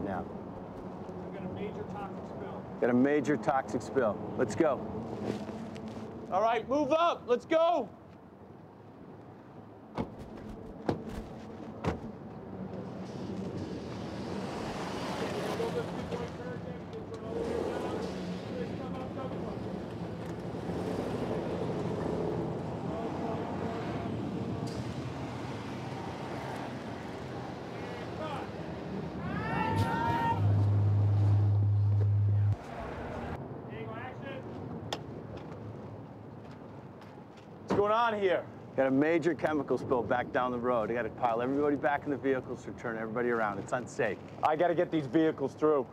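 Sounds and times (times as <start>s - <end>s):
vehicles driving past slowly: 11.4s - 37.7s
steady low drone: 30.4s - 32.6s.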